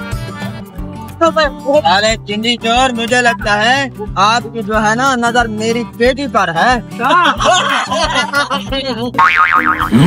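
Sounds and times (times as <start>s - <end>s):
background music: 0.0s - 10.0s
cartoon boing sound effect: 9.2s - 10.0s.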